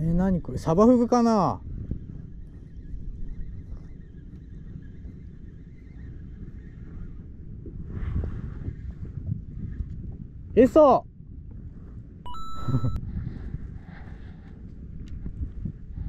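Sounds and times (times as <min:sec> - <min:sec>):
wind noise: 0:00.0 - 0:16.0.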